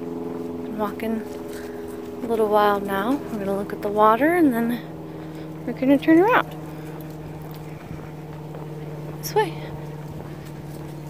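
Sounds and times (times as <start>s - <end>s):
footsteps on paved path: 0.0s - 11.0s
steady low hum: 0.0s - 11.0s.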